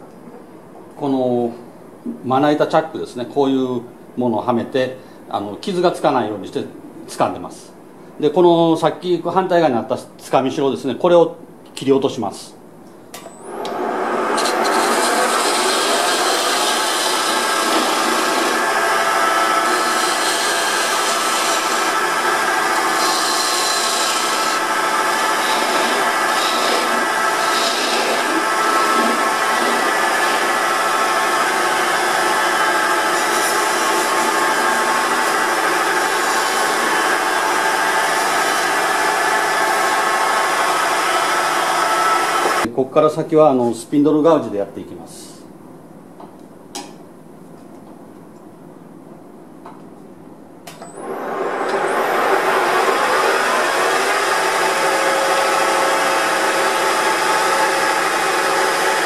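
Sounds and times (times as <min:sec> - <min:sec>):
turning tool cutting wood: 0:13.4 - 0:42.7, 0:51.0 - 0:59.0
wood lathe spinning: 0:13.4 - 0:42.7, 0:50.9 - 0:59.0.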